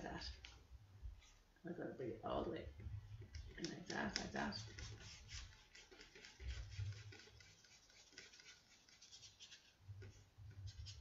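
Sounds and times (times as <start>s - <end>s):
paintbrush scratching on paper: 3.2s - 11.0s.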